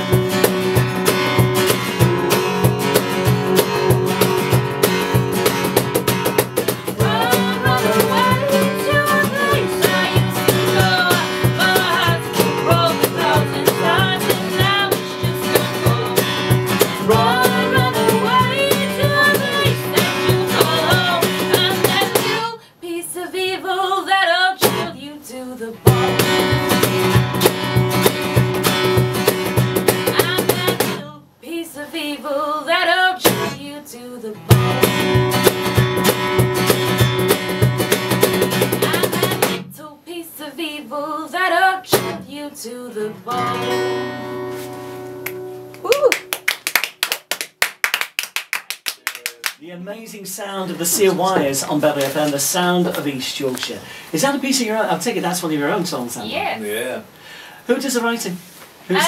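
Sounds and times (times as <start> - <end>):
strummed guitar chords: 0.0 - 22.4, 25.8 - 31.1, 34.4 - 39.7, 43.2 - 45.8
person singing: 7.0 - 22.6, 24.6 - 26.5, 38.6 - 40.0, 41.0 - 44.2.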